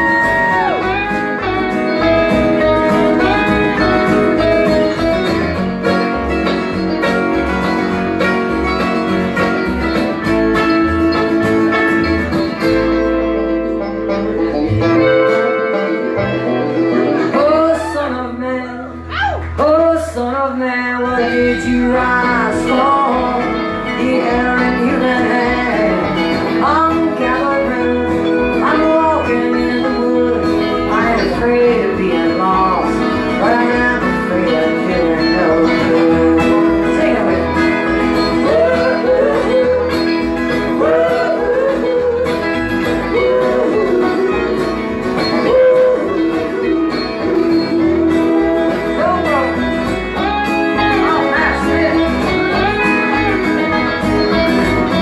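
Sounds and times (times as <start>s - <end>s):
acoustic guitar: 0.0s - 55.0s
banjo: 0.0s - 55.0s
electric guitar: 0.0s - 55.0s
lead vocal singing: 17.3s - 49.4s.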